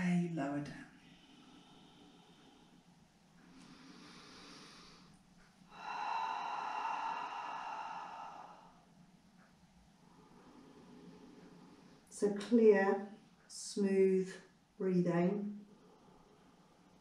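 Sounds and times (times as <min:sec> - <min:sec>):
woman breathing: 0:00.8 - 0:13.5, 0:15.6 - 0:17.0.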